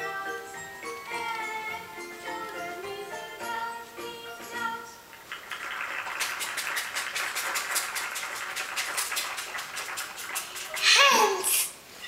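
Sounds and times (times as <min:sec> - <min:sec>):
hands clapping quickly: 0:05.1 - 0:11.0.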